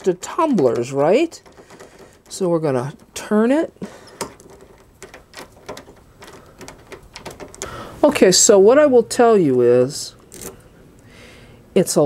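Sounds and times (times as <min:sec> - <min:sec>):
key clicking and rattling in lock: 0:00.0 - 0:07.9, 0:10.2 - 0:10.7.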